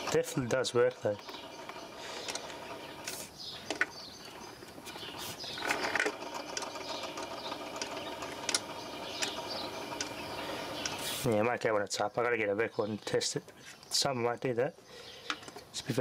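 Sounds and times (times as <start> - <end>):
turntable motor whir: 0.0 - 3.4, 5.4 - 11.3
sharp mechanical clicks: 5.5 - 11.1.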